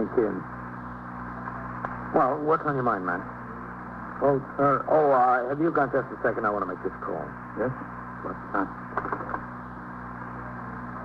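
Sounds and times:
recording hum and hiss: 0:00.0 - 0:11.0.

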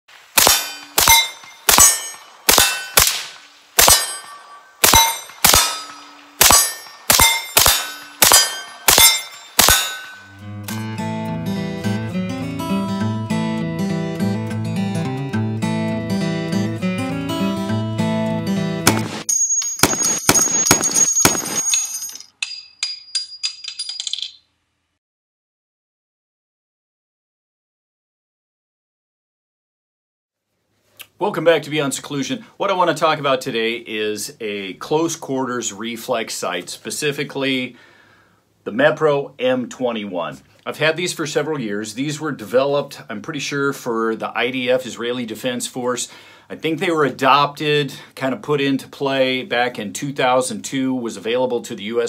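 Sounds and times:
rifle shots: 0:00.2 - 0:10.3, 0:18.9 - 0:19.2, 0:19.8 - 0:21.7
steel target ringing: 0:00.4 - 0:10.4, 0:18.9 - 0:23.6
light metallic clinks: 0:03.9 - 0:10.3, 0:19.3 - 0:24.4.

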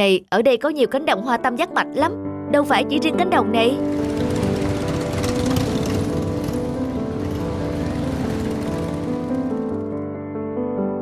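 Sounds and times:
soft background music: 0:00.0 - 0:11.0
motorcycle engines rattling: 0:03.7 - 0:10.0.

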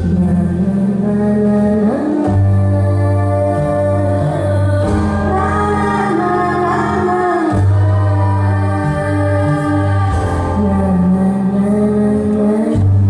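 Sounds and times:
low bass notes: 0:00.0 - 0:13.0
voices singing: 0:00.0 - 0:13.0.

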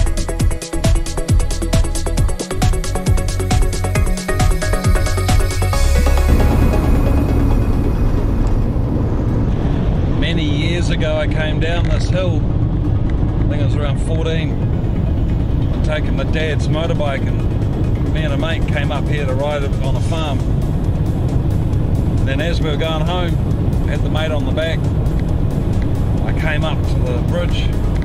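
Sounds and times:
van engine and tyres rumbling: 0:00.0 - 0:28.0
man talking: 0:10.2 - 0:12.4, 0:15.8 - 0:17.4, 0:18.1 - 0:20.5, 0:22.2 - 0:24.8, 0:26.2 - 0:27.8.

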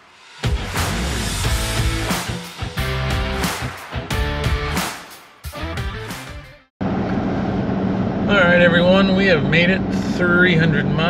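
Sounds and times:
background music: 0:00.0 - 0:06.7
road and engine noise in cab: 0:06.8 - 0:11.0
man talking: 0:08.3 - 0:11.0.

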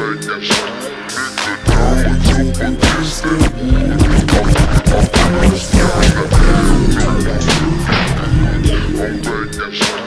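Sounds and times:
slowed-down hip hop beat: 0:00.0 - 0:10.0.

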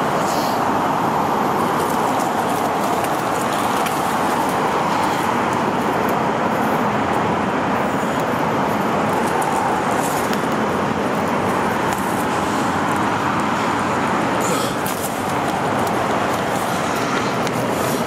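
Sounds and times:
freeway traffic noise: 0:00.0 - 0:18.0.

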